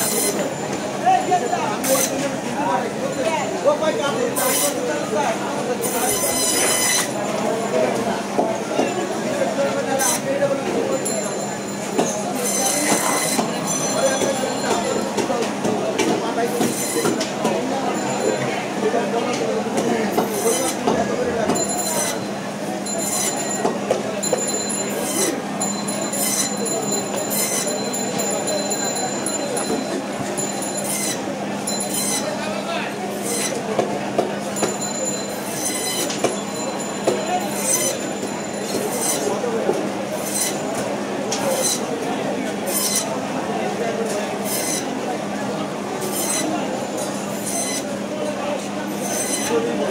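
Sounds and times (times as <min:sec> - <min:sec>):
band saw cutting fish: 0:00.0 - 0:00.6, 0:01.2 - 0:02.4, 0:04.1 - 0:07.9, 0:09.8 - 0:18.2, 0:19.8 - 0:49.9
saw blade cutting through fish: 0:33.2 - 0:33.6, 0:35.4 - 0:36.2, 0:37.4 - 0:38.0, 0:40.2 - 0:40.6, 0:42.7 - 0:43.1, 0:44.5 - 0:44.9, 0:46.0 - 0:46.6, 0:47.3 - 0:47.8, 0:48.9 - 0:49.6.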